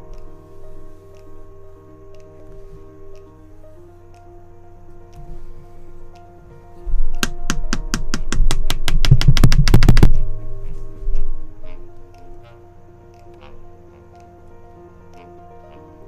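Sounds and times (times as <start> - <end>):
background music: 0.0 - 16.0
low thumping: 6.8 - 11.9.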